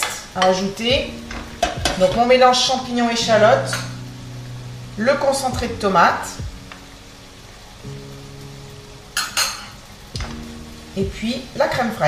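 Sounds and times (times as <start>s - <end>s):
food sizzling in a frying pan: 0.0s - 12.0s
soft background music: 0.0s - 12.0s.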